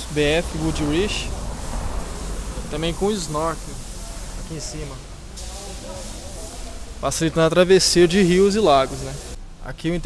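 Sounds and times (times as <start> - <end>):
high hiss: 0.0 - 9.4
faint background voices: 0.0 - 9.7
low rumble: 0.1 - 4.5.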